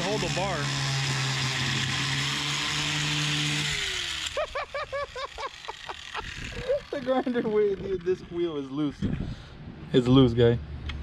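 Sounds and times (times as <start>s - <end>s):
angle grinder cutting metal: 0.0s - 8.9s
people laughing: 4.3s - 7.8s.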